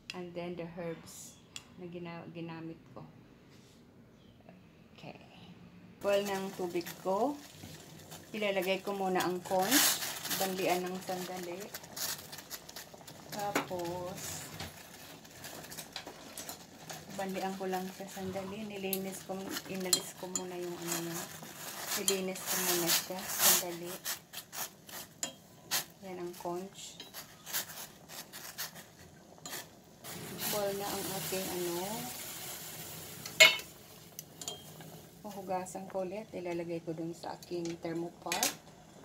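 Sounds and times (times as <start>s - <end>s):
water boiling in a pot: 6.0s - 39.0s
utensil clinking on steel pot: 19.4s - 20.9s, 33.2s - 34.9s.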